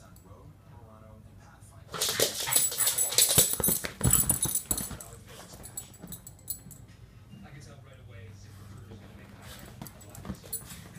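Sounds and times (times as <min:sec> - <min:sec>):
small dog play noises: 0:01.9 - 0:06.9, 0:08.5 - 0:10.9.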